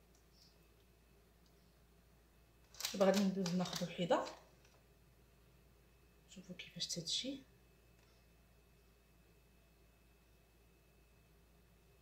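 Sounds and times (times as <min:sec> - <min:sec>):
woman speaking: 0:02.9 - 0:04.4, 0:06.3 - 0:07.5.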